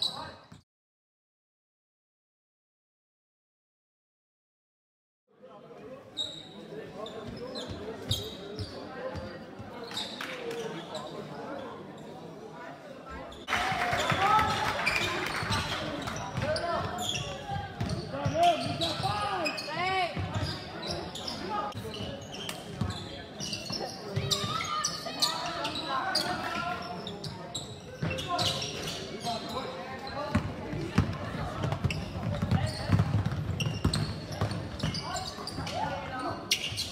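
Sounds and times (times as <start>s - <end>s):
sneakers squeaking: 0.0s - 0.6s, 6.1s - 12.2s, 13.1s - 36.9s
basketball bouncing on court: 16.3s - 19.1s, 30.3s - 35.6s.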